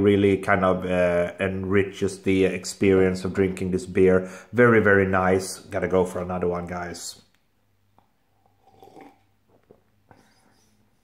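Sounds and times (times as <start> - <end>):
person sipping and swallowing: 7.9 - 10.7.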